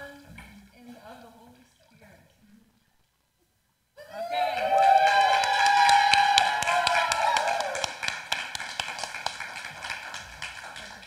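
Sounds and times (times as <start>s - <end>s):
people whooping: 4.0s - 8.1s
small group clapping and cheering: 4.1s - 11.0s.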